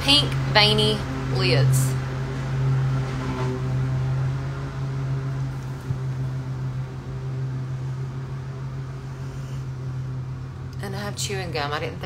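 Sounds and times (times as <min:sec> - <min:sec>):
lawn mower engine running: 0:00.0 - 0:11.8.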